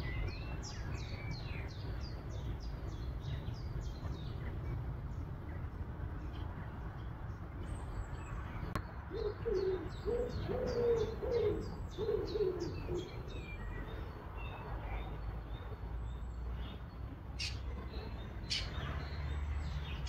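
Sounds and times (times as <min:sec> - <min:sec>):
steady low rumble: 0:00.0 - 0:09.2
songbirds chirping: 0:00.0 - 0:20.0
dove cooing: 0:09.1 - 0:13.2.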